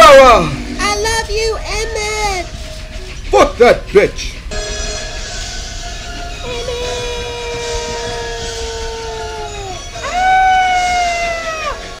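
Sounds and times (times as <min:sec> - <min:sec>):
woman screaming: 0:06.5 - 0:11.8.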